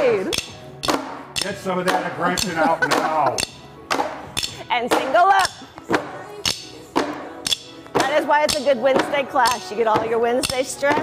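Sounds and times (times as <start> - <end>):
drumsticks striking padded boxes: 0.3 - 11.0.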